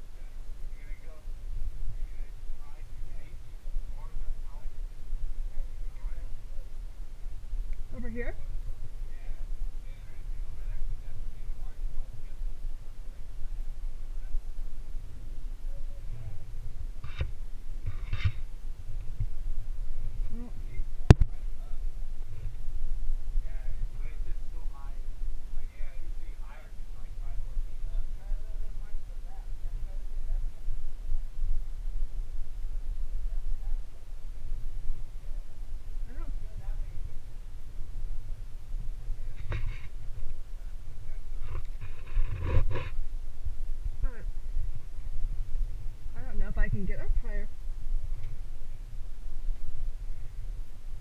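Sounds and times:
faint voices: 0.0 - 18.4, 19.0 - 43.0, 43.8 - 49.0
wind rumble: 0.0 - 51.0.

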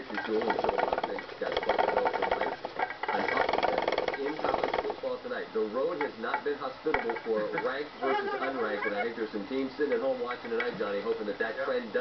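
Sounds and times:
hamster claws scrabbling on plastic: 0.0 - 5.2.

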